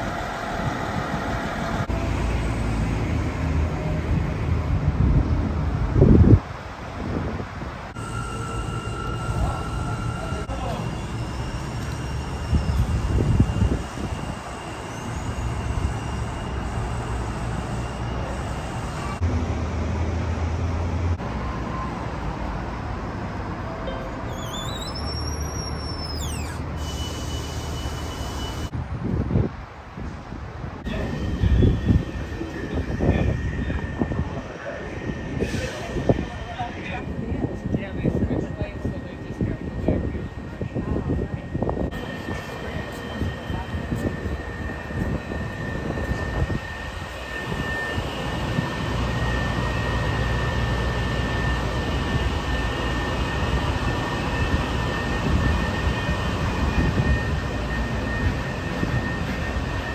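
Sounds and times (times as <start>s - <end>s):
traffic-like noise: 1.4s - 59.9s.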